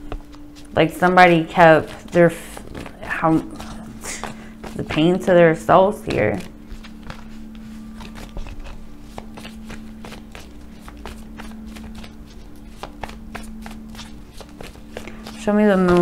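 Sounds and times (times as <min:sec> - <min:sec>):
cards being shuffled: 0:00.0 - 0:05.3, 0:06.0 - 0:16.0
steady low drone: 0:00.0 - 0:16.0.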